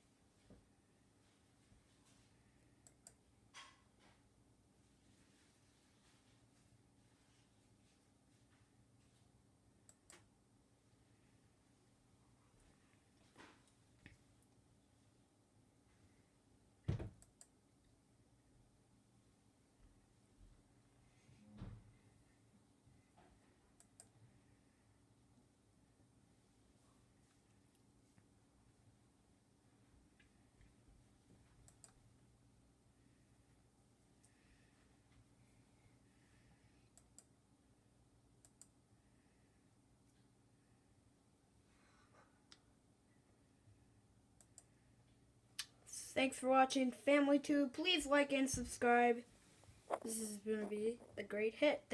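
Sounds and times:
computer mouse clicks: 2.8 - 3.7, 9.8 - 10.3, 17.2 - 17.6, 23.8 - 24.2, 31.6 - 32.0, 36.9 - 37.3, 38.4 - 38.8, 44.4 - 44.7.

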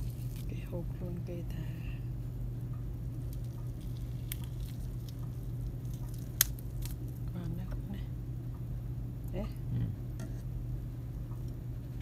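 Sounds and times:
fingers tearing cooked chicken: 0.0 - 0.6, 3.2 - 7.4
steady low hum: 0.0 - 12.0.

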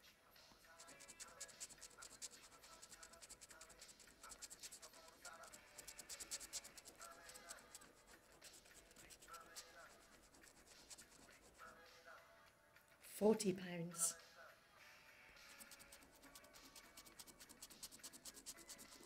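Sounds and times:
coin scraping scratch card: 0.7 - 11.8, 15.4 - 19.0.

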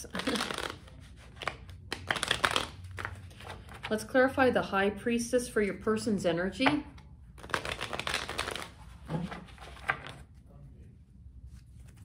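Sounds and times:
cards being riffle-shuffled: 0.1 - 3.9, 7.4 - 10.3
soft handling of cards: 0.1 - 3.9, 7.0 - 12.0.

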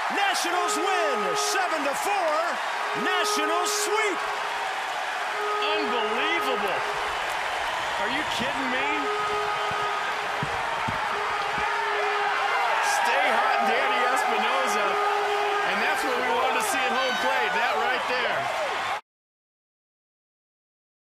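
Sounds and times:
crowd cheering and yelling: 0.0 - 19.0.

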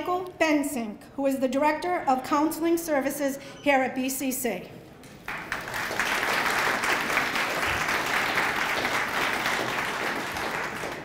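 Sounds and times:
audience applauding: 5.3 - 11.0.

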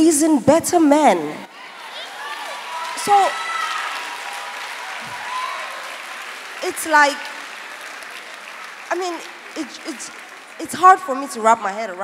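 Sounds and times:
large audience applauding: 1.6 - 12.0.

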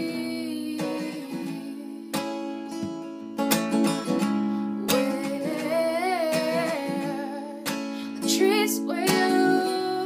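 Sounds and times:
acoustic guitar chord: 0.0 - 10.0.

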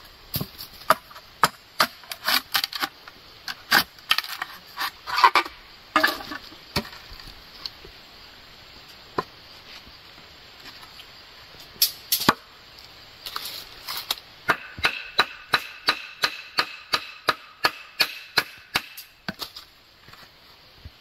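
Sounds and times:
machete chopping bamboo: 0.4 - 2.9, 14.4 - 19.6.

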